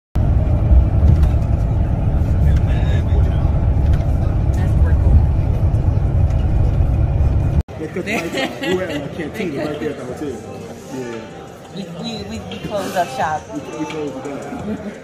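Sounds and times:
bus road and engine rumble: 0.2 - 7.7.

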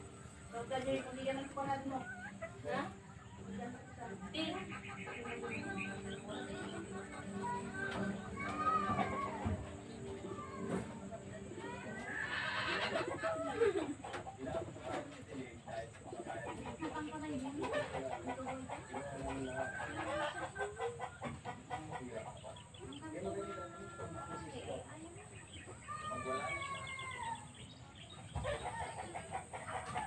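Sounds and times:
birds calling: 0.0 - 30.0
chickens clucking: 0.0 - 30.0.

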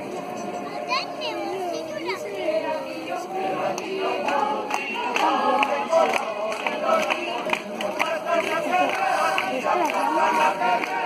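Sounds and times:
children chattering and calling out: 0.0 - 3.7.

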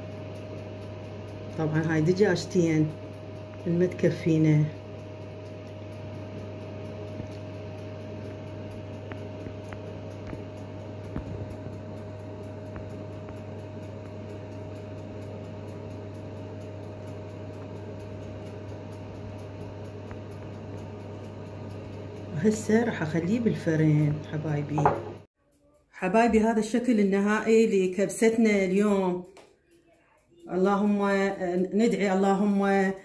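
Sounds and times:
low machine hum: 0.0 - 25.3.

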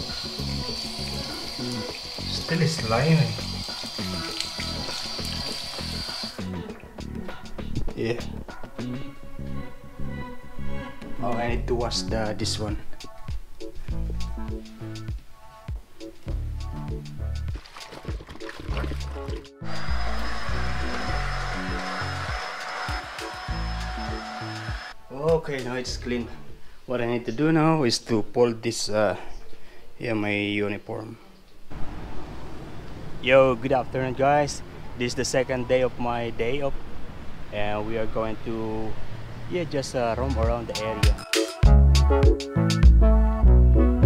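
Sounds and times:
vacuum cleaner running: 0.0 - 4.2, 19.6 - 25.0
background music with beat: 3.3 - 9.6, 11.8 - 25.7, 40.3 - 44.0.

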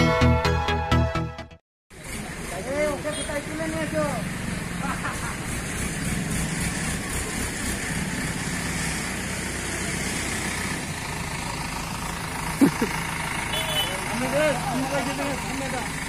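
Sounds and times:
crane diesel engine running: 2.0 - 16.0.

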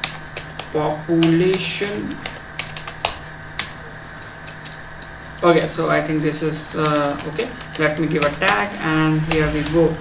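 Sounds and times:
computer keyboard keystrokes: 0.0 - 4.8, 6.8 - 9.5.

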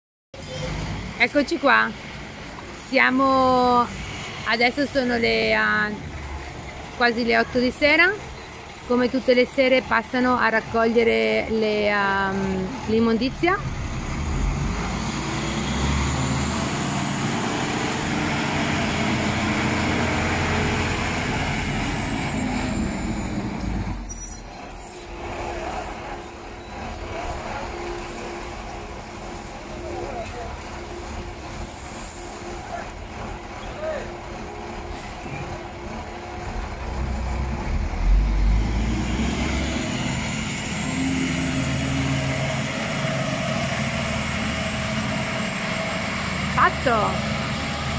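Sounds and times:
garbage truck diesel engine: 0.4 - 47.9.

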